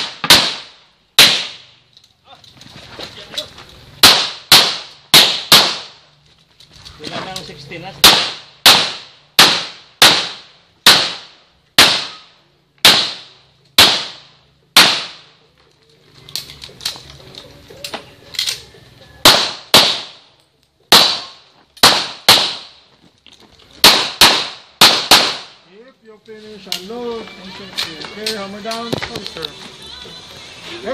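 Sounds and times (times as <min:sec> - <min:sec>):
handgun shots: 0:00.0 - 0:01.6, 0:04.0 - 0:05.9, 0:08.0 - 0:12.2, 0:12.8 - 0:14.2, 0:14.8 - 0:15.3, 0:19.2 - 0:20.2, 0:20.9 - 0:22.7, 0:23.8 - 0:25.5.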